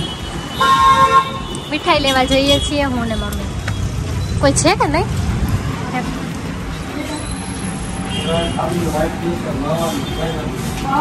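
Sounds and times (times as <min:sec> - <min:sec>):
vehicle horn: 0:00.0 - 0:03.6, 0:07.9 - 0:09.1
street traffic hum: 0:00.0 - 0:11.0.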